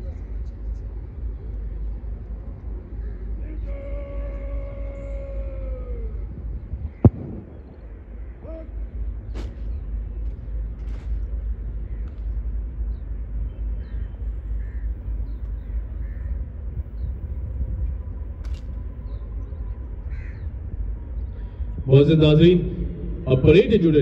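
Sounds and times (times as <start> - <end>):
steady low rumble: 0.0 - 24.0
faint crow caws: 3.0 - 6.2, 6.9 - 8.9, 11.8 - 13.1, 13.8 - 17.1, 20.0 - 21.8.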